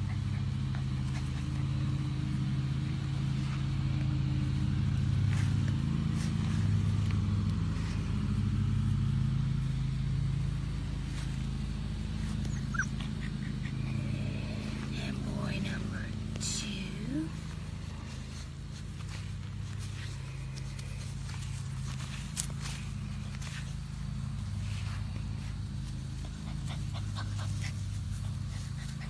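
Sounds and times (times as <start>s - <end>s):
low engine hum: 0.0s - 29.0s
puppy squeaks: 12.3s - 13.8s.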